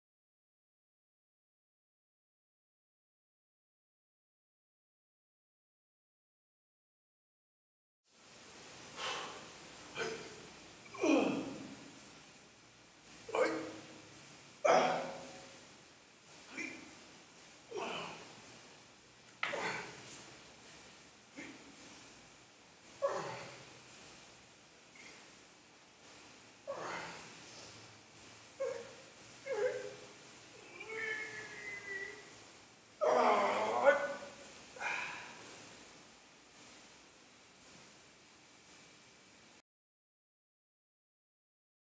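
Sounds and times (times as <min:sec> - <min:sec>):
man exhaling with effort: 0:08.9 - 0:11.9, 0:14.6 - 0:15.6, 0:16.4 - 0:17.0, 0:17.7 - 0:18.4, 0:19.4 - 0:20.2, 0:21.3 - 0:22.0, 0:23.0 - 0:23.8, 0:24.9 - 0:25.3, 0:26.6 - 0:27.8, 0:33.0 - 0:35.6
pitched vocal sounds: 0:13.3 - 0:13.9, 0:14.6 - 0:15.4, 0:17.7 - 0:18.3, 0:28.6 - 0:32.3, 0:33.0 - 0:35.4.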